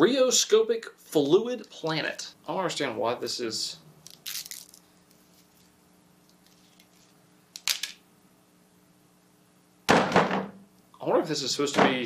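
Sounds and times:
faint hum: 0:00.0 - 0:12.0
plastic wrap crinkling: 0:04.1 - 0:05.7
loud thump: 0:09.9 - 0:10.6.

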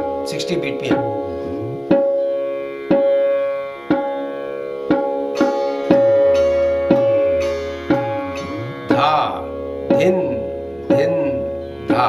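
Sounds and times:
sitar strings ringing: 0:00.0 - 0:12.0
tabla strokes: 0:00.0 - 0:12.0.

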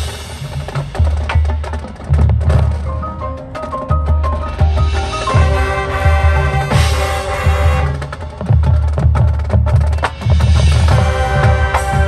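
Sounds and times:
marching band playing: 0:00.0 - 0:12.0.

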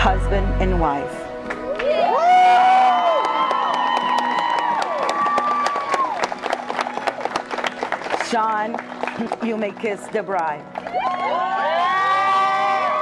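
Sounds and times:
applause: 0:01.4 - 0:13.0
crowd cheering and whooping: 0:01.6 - 0:07.5, 0:10.8 - 0:13.0.

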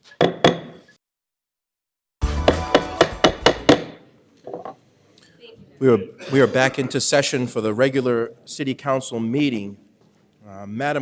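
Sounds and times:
wooden gavel rapping on block: 0:02.2 - 0:04.0.

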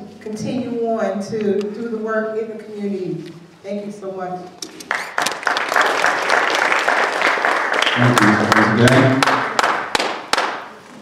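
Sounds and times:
audience applauding: 0:04.8 - 0:10.7.

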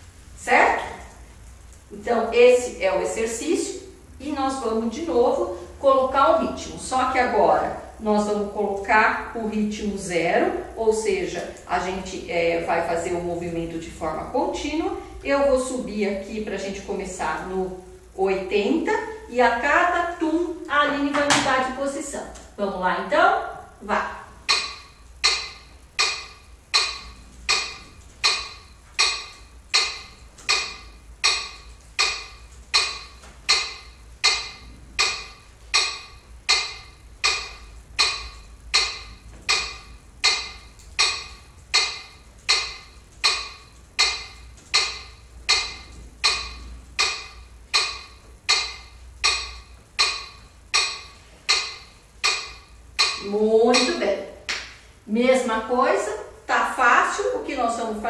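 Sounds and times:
metronome ticking: 0:00.0 - 0:58.0.

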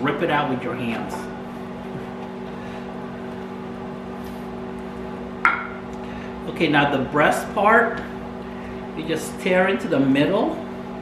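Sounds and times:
microwave oven humming: 0:00.0 - 0:11.0.

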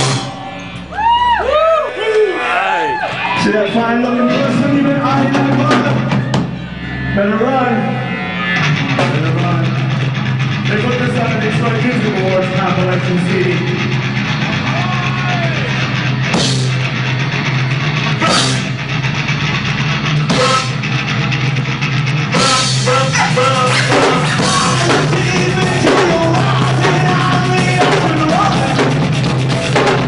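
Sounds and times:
cymbal crashes: 0:00.0 - 0:01.0
live rock band playing: 0:00.0 - 0:30.0.

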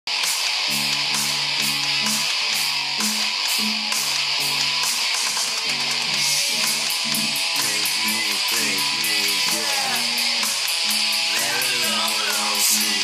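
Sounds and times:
acoustic guitar strummed hard: 0:00.2 - 0:13.0.

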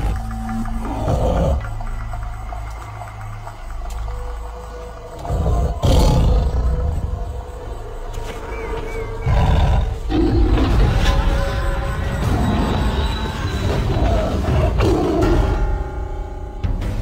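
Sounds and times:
dramatic music: 0:00.0 - 0:17.0
big cat roaring: 0:05.2 - 0:07.2, 0:09.2 - 0:11.0.

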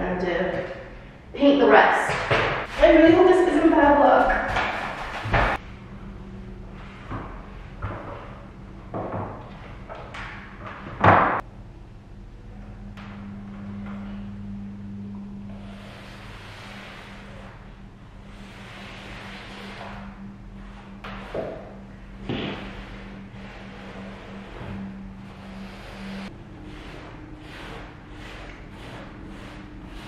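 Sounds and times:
steady low hum: 0:00.0 - 0:30.0
brush swishing on wall: 0:15.5 - 0:30.0
foot thump on metal stepladder: 0:22.2 - 0:22.8.

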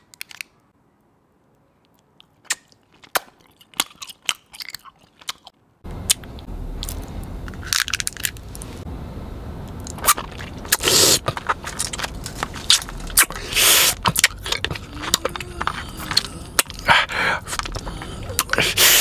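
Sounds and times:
biting and chewing candy: 0:01.9 - 0:08.4, 0:09.8 - 0:19.0
candy wrapper crinkling: 0:06.8 - 0:08.8, 0:11.2 - 0:17.9.

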